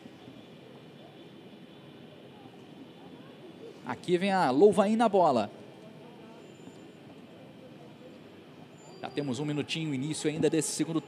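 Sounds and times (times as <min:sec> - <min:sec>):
distant indistinct voices: 0:00.0 - 0:11.0.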